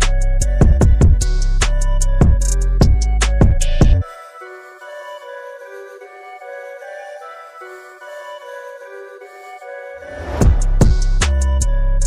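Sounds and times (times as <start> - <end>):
background music with heavy bass: 0.0 - 4.7, 9.9 - 12.0.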